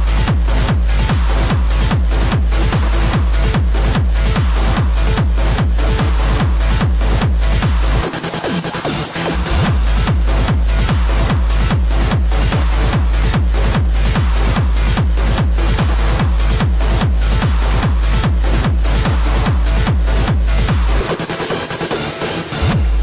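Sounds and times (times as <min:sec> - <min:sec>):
fast kick drum: 0:00.0 - 0:23.0
hard dance electronic music: 0:00.0 - 0:23.0.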